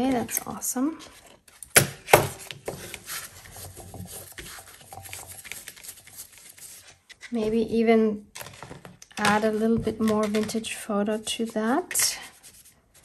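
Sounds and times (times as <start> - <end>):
paper rustling and rubbing: 2.4 - 7.8, 11.2 - 13.0.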